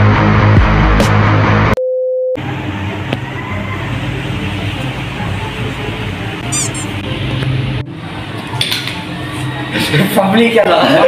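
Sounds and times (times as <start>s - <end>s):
electronic beep: 6.5s - 6.9s.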